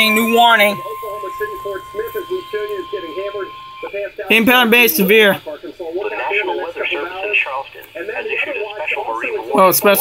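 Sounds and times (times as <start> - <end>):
quiet speech: 0.0 - 10.0.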